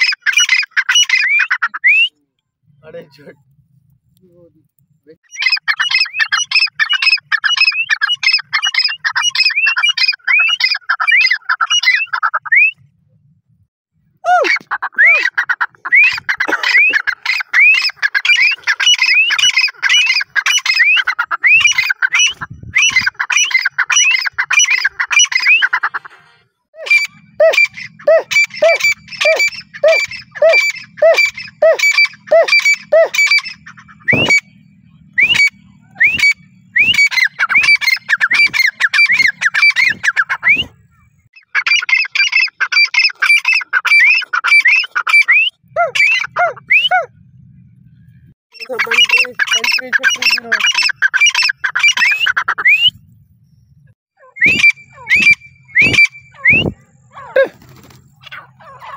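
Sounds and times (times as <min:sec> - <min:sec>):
lower-pitched bird calls: 0:00.0 - 0:02.2, 0:05.2 - 0:12.9, 0:14.2 - 0:26.2, 0:26.8 - 0:58.9
francolin calling: 0:05.2 - 0:12.8, 0:14.3 - 0:25.8, 0:26.8 - 0:47.2, 0:47.9 - 0:58.9.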